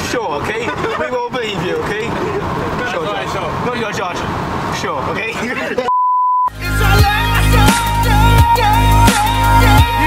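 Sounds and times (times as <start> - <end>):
pure electronic beep: 5.9 - 6.5
electronic music with deep bass: 6.5 - 10.0.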